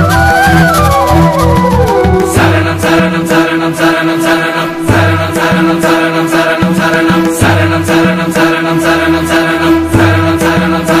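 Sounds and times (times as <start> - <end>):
held drone note: 0.0 - 3.4
steady percussion beat: 0.0 - 3.4
chant-like voices: 0.0 - 11.0.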